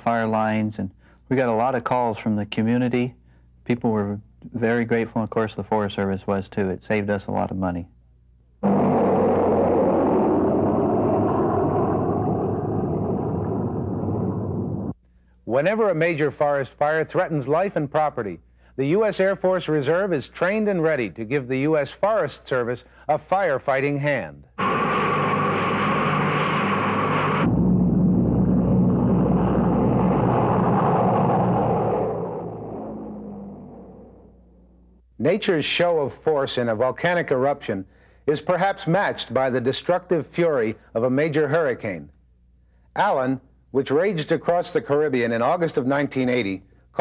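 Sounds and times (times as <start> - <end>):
turboprop plane passing overhead: 24.6 - 34.4.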